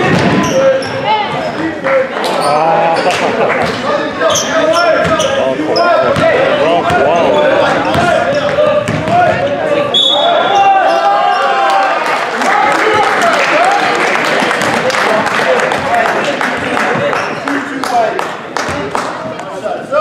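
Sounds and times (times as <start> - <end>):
sneakers squeaking: 0.0 - 11.6.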